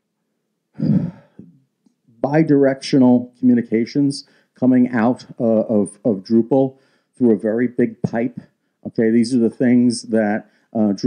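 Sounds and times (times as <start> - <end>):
man sighing: 0.8 - 1.6.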